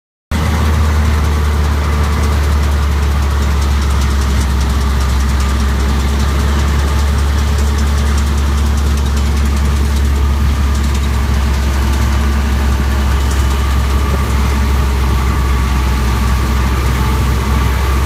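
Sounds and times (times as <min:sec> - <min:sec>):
baler machinery low drone: 0:00.3 - 0:18.0
tractor diesel engine under load: 0:00.3 - 0:18.0.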